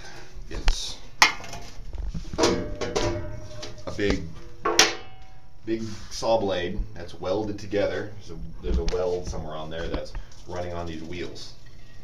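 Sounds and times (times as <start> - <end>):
metal cover clicking: 2.4 - 3.8
metal cover clattering and ringing: 2.4 - 5.5.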